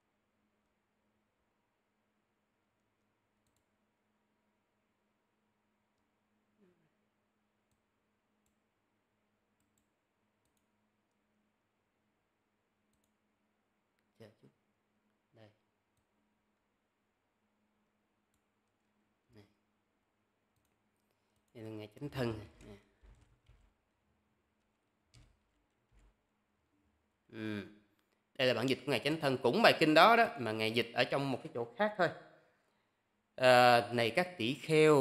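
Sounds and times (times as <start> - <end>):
computer mouse clicks: 2.8 - 3.8, 7.6 - 8.6, 9.6 - 11.2, 12.9 - 13.2, 20.5 - 21.6, 24.6 - 26.2.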